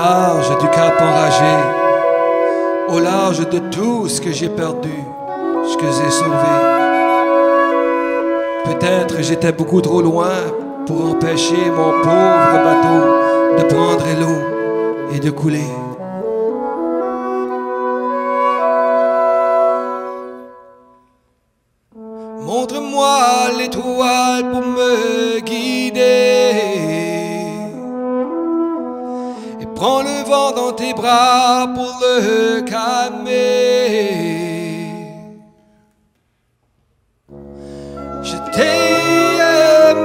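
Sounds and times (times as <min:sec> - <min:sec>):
person singing: 0:00.0 - 0:16.1, 0:22.4 - 0:27.8, 0:37.3 - 0:40.0
bassoon: 0:00.0 - 0:21.0, 0:21.9 - 0:35.8, 0:37.3 - 0:40.0
french horn chord: 0:00.0 - 0:21.0, 0:37.3 - 0:40.0
low held wind notes: 0:00.0 - 0:21.1, 0:37.3 - 0:40.0
sliding wavering notes: 0:37.3 - 0:40.0.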